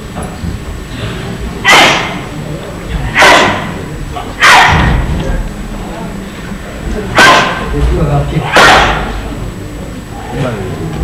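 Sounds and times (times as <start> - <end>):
short loud shouts: 3.2 - 3.8, 4.4 - 5.0, 8.4 - 9.1.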